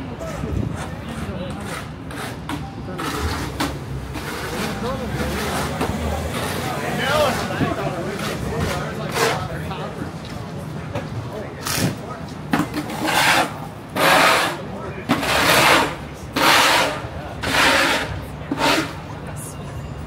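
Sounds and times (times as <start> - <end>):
rhythmic rasping scraping strokes: 0.3 - 9.6, 12.8 - 19.0.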